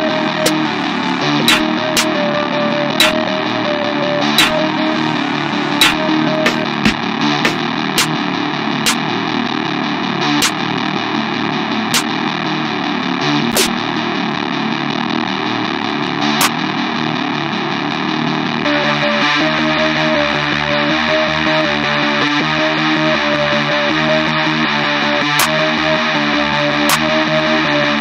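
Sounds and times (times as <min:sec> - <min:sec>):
clear pitched notes: 0:00.0 - 0:14.3
distorted guitar-like melody loop: 0:00.0 - 0:28.0
snare hits: 0:01.4 - 0:02.1, 0:03.0 - 0:03.2, 0:04.4 - 0:04.6, 0:05.8 - 0:08.2, 0:11.9 - 0:12.1, 0:13.5 - 0:13.7, 0:26.9 - 0:27.1.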